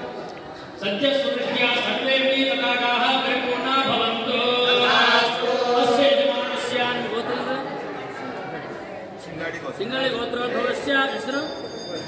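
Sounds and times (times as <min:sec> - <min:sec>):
men chanting: 0:03.4 - 0:07.1.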